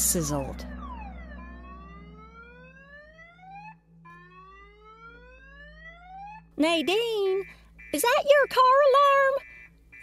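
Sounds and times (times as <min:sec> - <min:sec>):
low hum: 0:00.0 - 0:07.9
car alarm whooping: 0:00.6 - 0:10.0.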